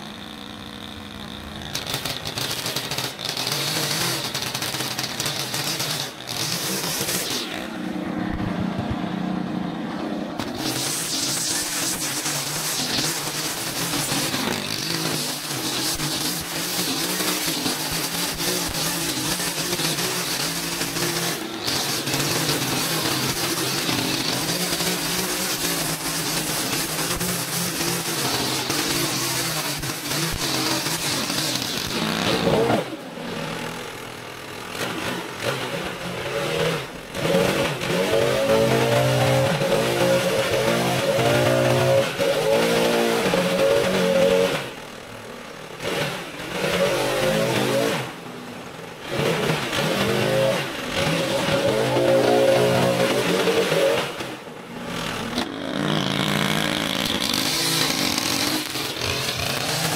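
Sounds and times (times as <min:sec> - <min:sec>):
leaf blower revving: 0:00.0 - 0:59.9
string trimmer revving: 0:00.0 - 0:59.9.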